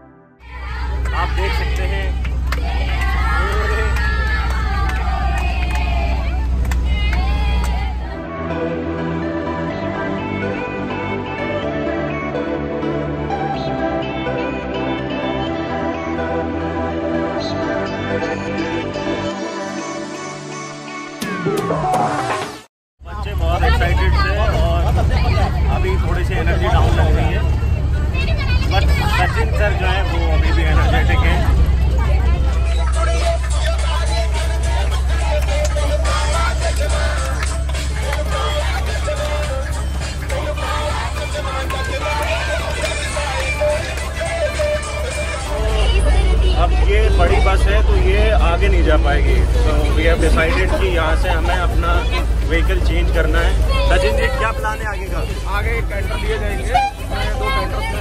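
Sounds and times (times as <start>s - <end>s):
passengers chattering: 0.4s - 8.3s, 21.3s - 58.0s
bus engine rumble: 0.4s - 19.9s, 21.3s - 58.0s.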